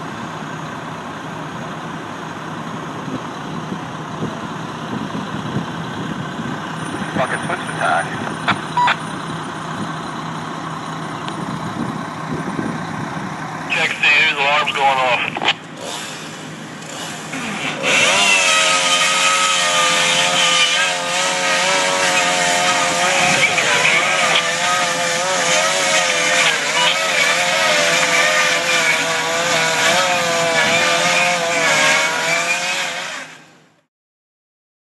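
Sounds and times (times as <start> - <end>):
engine running at high speed: 0.0 - 33.9.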